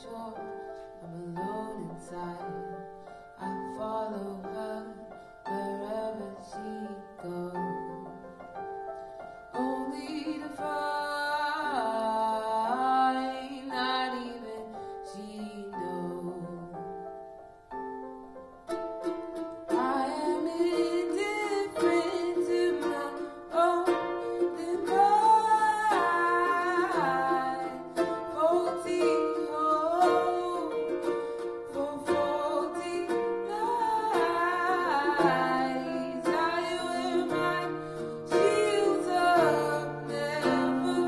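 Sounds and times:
ukulele strumming: 0:00.0 - 0:08.0, 0:09.0 - 0:16.8, 0:17.7 - 0:41.0
woman singing: 0:00.0 - 0:08.4, 0:09.5 - 0:17.0, 0:19.6 - 0:41.0
electric piano chords: 0:00.0 - 0:41.0.

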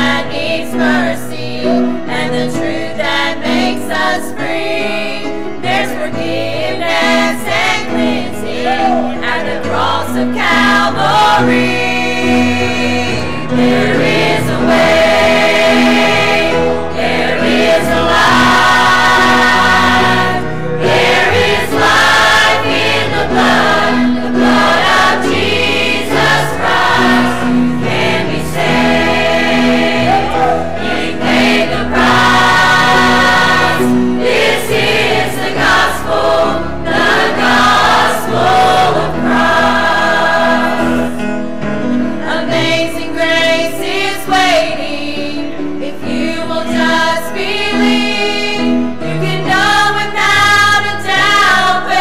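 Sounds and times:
choir singing gospel: 0:00.0 - 0:52.0.

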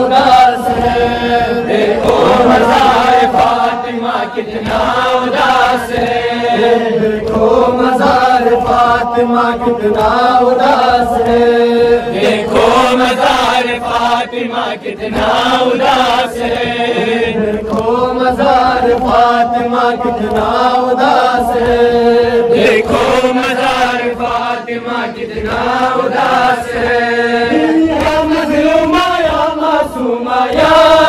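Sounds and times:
men chanting a mourning lament: 0:00.0 - 0:31.0.

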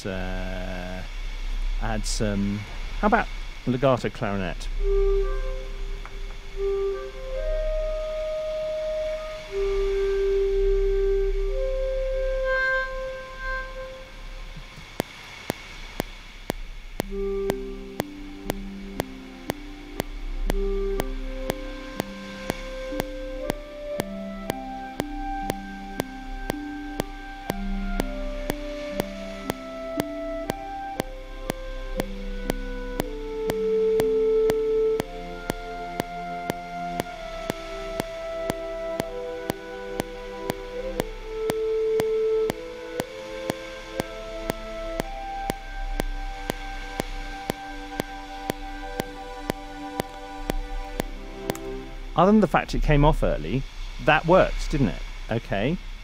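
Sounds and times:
low repeated accompaniment notes: 0:00.0 - 0:15.2, 0:16.0 - 0:56.0
clarinet melody: 0:01.7 - 0:15.0, 0:17.0 - 0:53.6
metronome clicking: 0:14.6 - 0:51.8.

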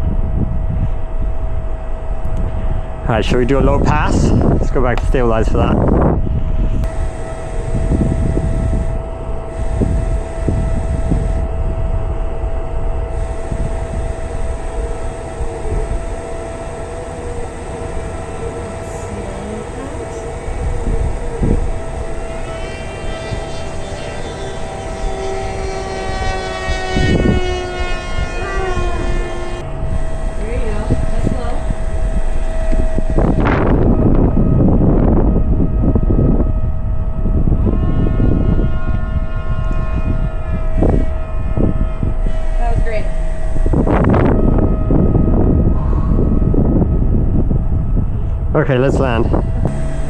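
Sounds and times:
steady high hum: 0:00.0 - 0:50.0
wind rumbling on microphone: 0:00.0 - 0:50.0
model plane motor whine: 0:05.7 - 0:48.5, 0:49.3 - 0:50.0.

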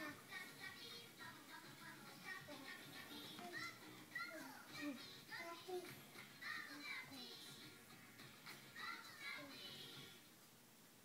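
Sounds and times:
children speaking: 0:02.2 - 0:07.4.

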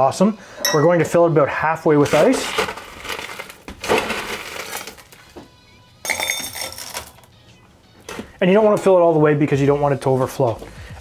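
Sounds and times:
ice rattling into a metal cup: 0:02.0 - 0:05.2, 0:06.1 - 0:07.2.

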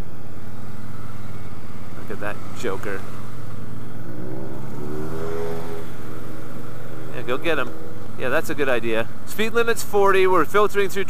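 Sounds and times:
motorcycle engine running: 0:00.0 - 0:09.9
motorcycle passing by: 0:00.8 - 0:08.8.

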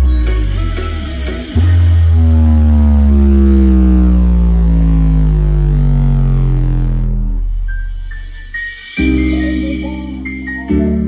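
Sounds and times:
deep sub-bass note: 0:00.0 - 0:11.0
synth tone sliding down: 0:00.0 - 0:11.0.

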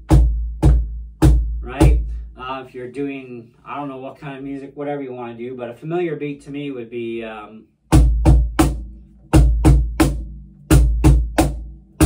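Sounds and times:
cajon played by hand: 0:00.0 - 0:02.1, 0:08.0 - 0:12.0
man talking: 0:01.6 - 0:07.6.

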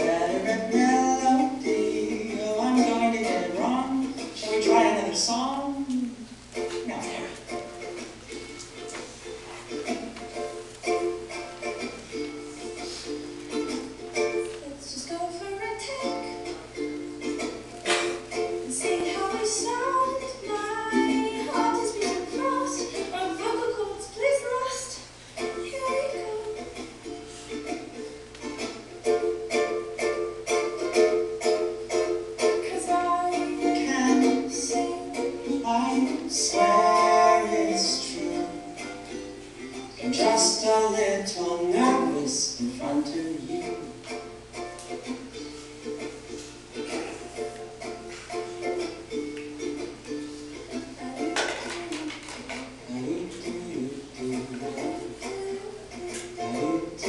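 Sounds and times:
singing voice: 0:00.0 - 0:07.6, 0:18.7 - 0:24.2, 0:32.4 - 0:39.1, 0:39.7 - 0:44.2, 0:50.7 - 0:57.0.

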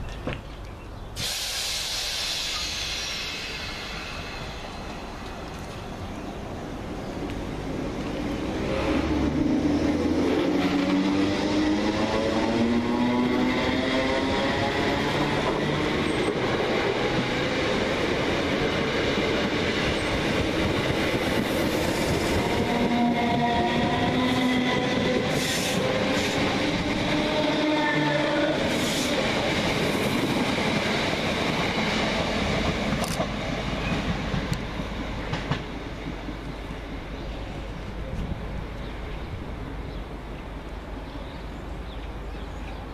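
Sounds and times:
train wheels clanking and clicking: 0:28.8 - 0:35.7.

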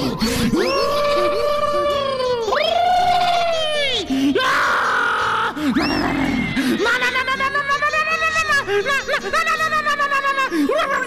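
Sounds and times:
exaggerated cartoon cries: 0:00.5 - 0:11.0.

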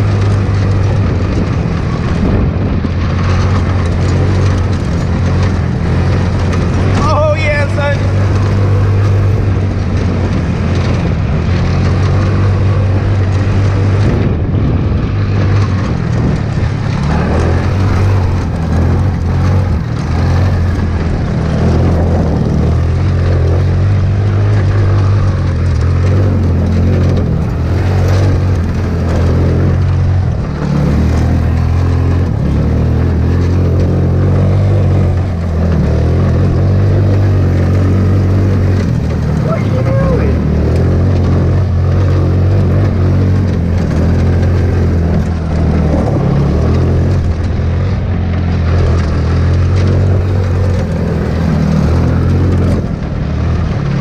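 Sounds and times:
go-kart engine running: 0:00.0 - 0:54.0.

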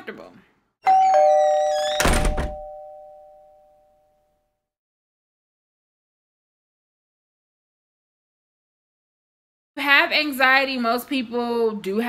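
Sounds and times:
two-note ding-dong chime: 0:00.9 - 0:04.0.

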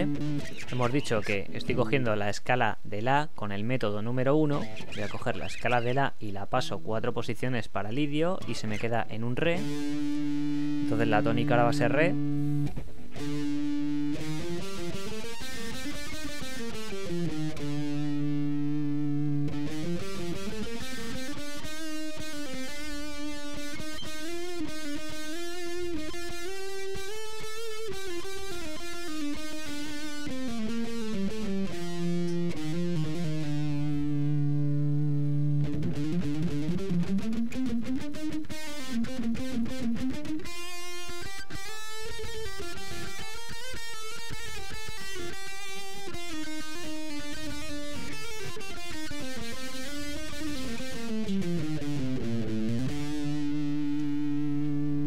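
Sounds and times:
overdriven electric guitar melody: 0:00.0 - 0:02.1, 0:04.3 - 0:06.0, 0:09.5 - 0:55.0.

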